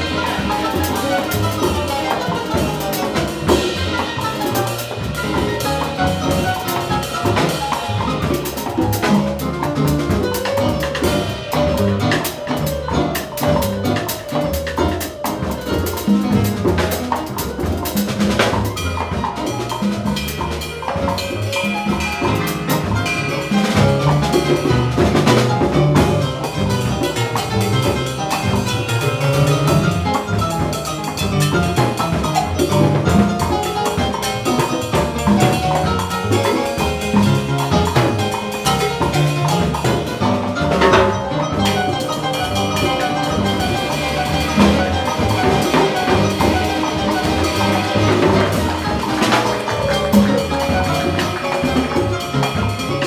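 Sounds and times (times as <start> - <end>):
congas struck by hand: 0.0 - 53.0
drum kit with cymbals: 0.0 - 53.0
piano: 0.0 - 53.0
upright bass line: 0.0 - 53.0.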